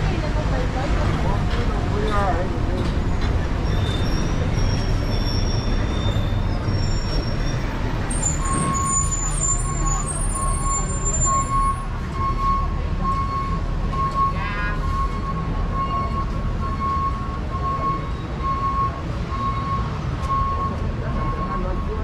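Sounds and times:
traffic low rumble: 0.0s - 22.0s
high squeal: 3.6s - 11.8s.

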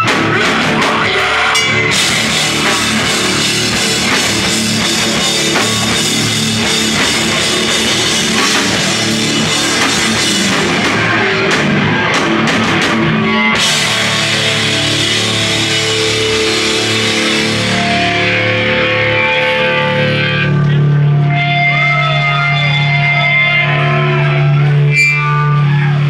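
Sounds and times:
drum kit: 0.0s - 22.0s
loud distorted guitars: 0.0s - 26.0s.

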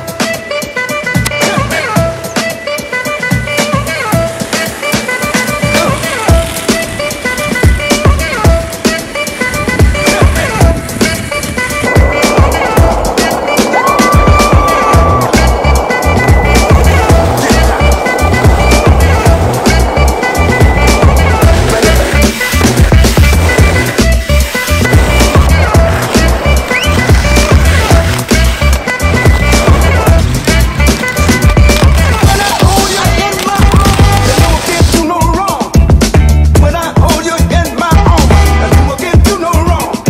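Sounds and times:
music with a steady beat: 0.0s - 40.0s
roller skate wheels on pavement: 0.0s - 40.0s.

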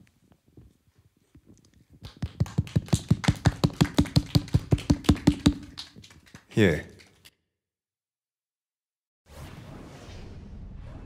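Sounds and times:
fast hand clapping: 2.0s - 7.3s.

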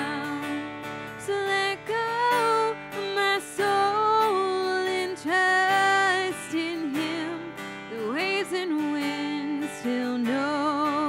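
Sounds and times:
strummed acoustic guitar: 0.0s - 11.0s.

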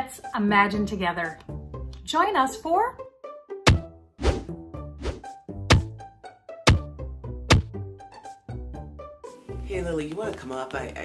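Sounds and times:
bouncy background music: 0.0s - 11.0s.

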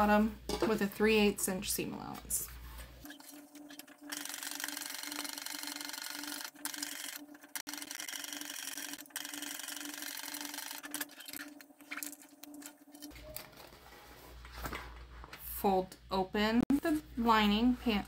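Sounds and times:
sewing machine stitching: 4.1s - 11.4s.

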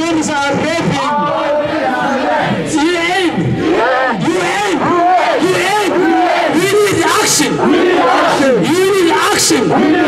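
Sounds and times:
crowd: 0.0s - 10.0s
man shouting through a megaphone: 0.0s - 10.0s.

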